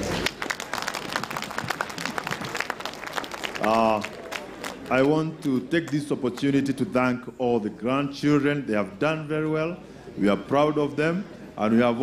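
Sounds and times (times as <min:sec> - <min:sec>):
audience applauding: 0:00.0 - 0:06.0.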